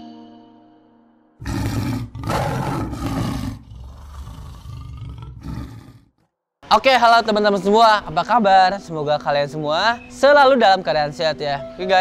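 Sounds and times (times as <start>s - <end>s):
big cat roaring: 1.4s - 6.1s.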